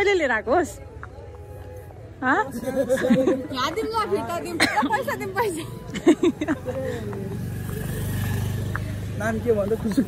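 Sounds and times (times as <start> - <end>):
motorcycle engine rumbling: 5.0 - 10.0.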